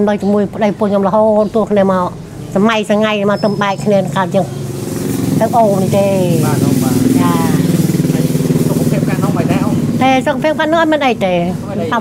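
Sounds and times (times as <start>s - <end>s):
woman speaking: 0.0s - 4.5s, 5.4s - 7.8s, 10.0s - 12.0s
small engine running: 3.4s - 11.7s.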